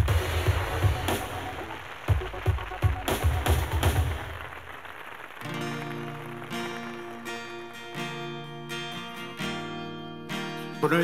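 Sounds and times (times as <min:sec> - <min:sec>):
acoustic guitar strumming chords: 0:05.4 - 0:11.0.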